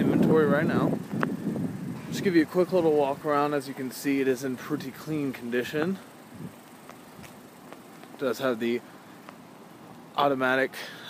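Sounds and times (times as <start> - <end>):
faint outdoor background noise: 0.0 - 11.0
soft ticks: 9.2 - 10.0.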